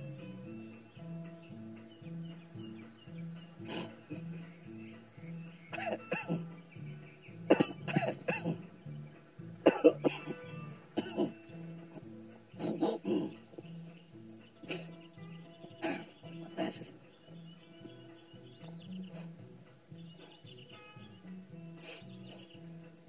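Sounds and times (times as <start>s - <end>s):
quiet guitar music: 0.0s - 23.0s
man coughing: 5.7s - 6.5s, 7.5s - 8.7s, 9.6s - 11.4s, 12.6s - 13.4s.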